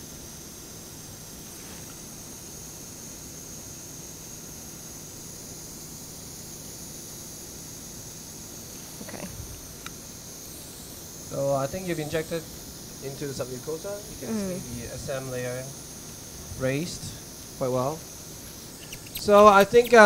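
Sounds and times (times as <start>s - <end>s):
steady background hiss: 0.0s - 20.0s
faint low hum: 10.9s - 20.0s.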